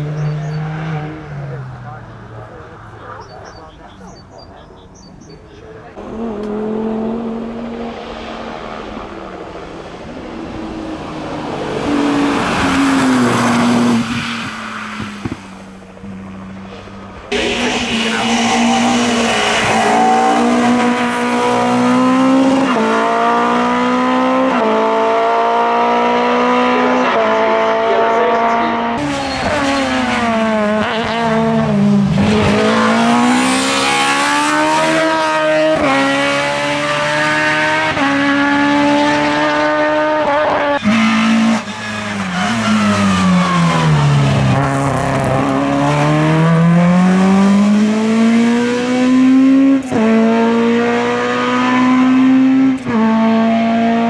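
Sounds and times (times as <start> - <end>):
race car engines at full throttle: 0.0 - 54.0.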